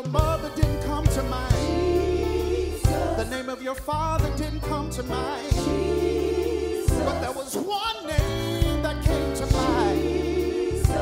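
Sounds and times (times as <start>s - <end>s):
band with bass and drums: 0.0s - 7.5s, 8.2s - 11.0s.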